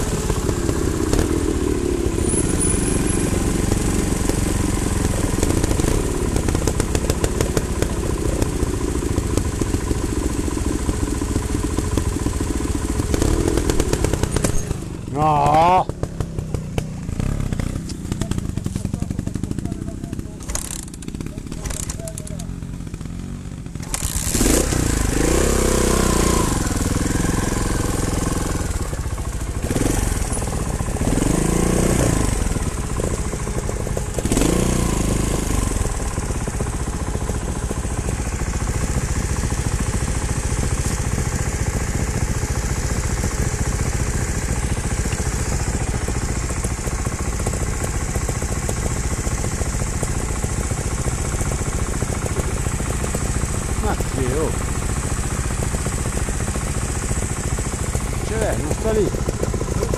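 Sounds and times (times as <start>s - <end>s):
motorcycle engine idling: 0.0s - 59.9s
motorcycle engine revving: 0.0s - 59.9s.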